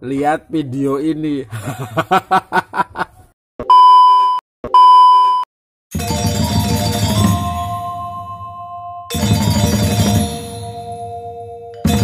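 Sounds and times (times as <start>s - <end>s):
high test tone beep: 3.6s - 5.5s
music: 5.9s - 12.0s.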